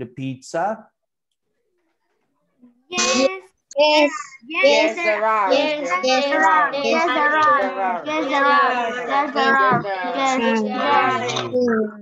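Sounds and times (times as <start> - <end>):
child's voice: 2.6 - 12.0.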